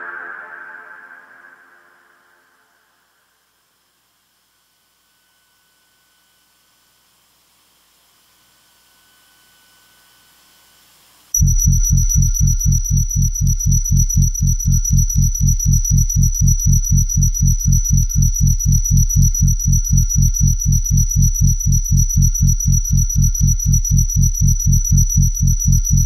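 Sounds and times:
faint high tone over hiss: 0.0 - 26.0
pulsing bass: 11.4 - 26.0
steady high whine: 11.4 - 26.0.

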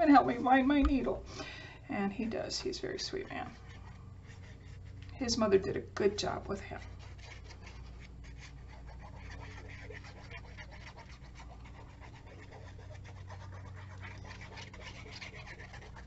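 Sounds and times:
steady low hum: 0.0 - 16.0
paper handling scratches and ticks: 2.2 - 16.0.

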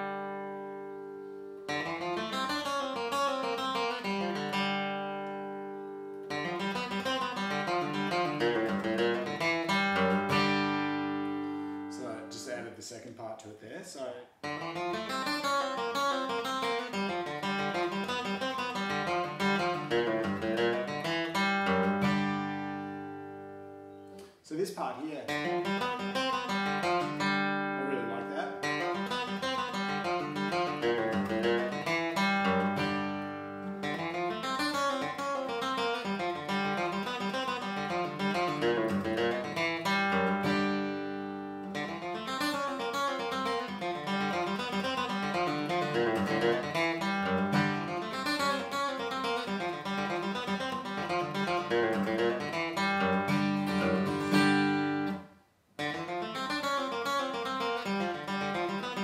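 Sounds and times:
acoustic guitar flatpicked lick: 0.0 - 12.5, 14.4 - 24.4, 25.3 - 59.0.

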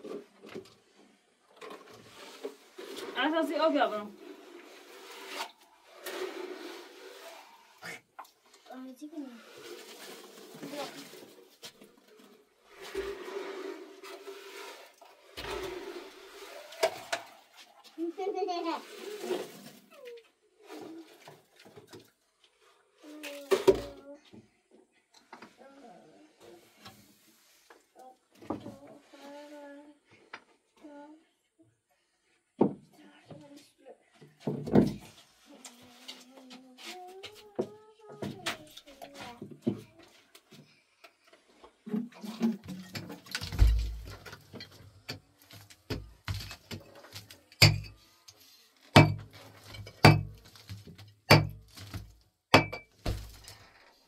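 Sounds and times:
short knocks and clatters: 41.9 - 46.9.

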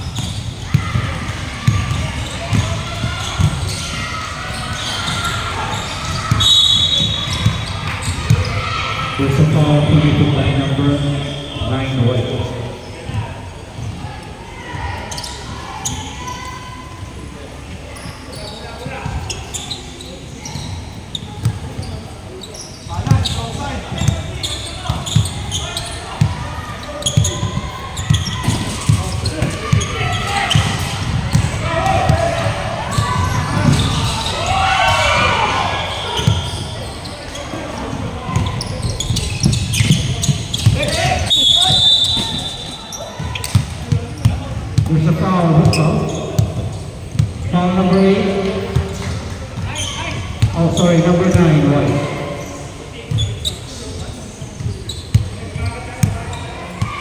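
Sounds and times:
basketball bouncing on gym floor: 0.0 - 3.9, 45.6 - 47.4
players shouting: 0.0 - 17.4, 23.0 - 53.2.

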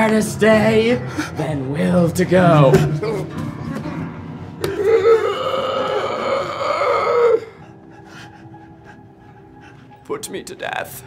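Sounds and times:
man's strained vocal cry: 4.6 - 7.6.

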